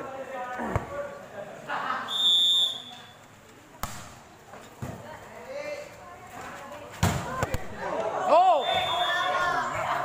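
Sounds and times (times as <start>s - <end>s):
spectators' voices: 0.0s - 10.0s
volleyball being struck: 3.8s - 4.2s.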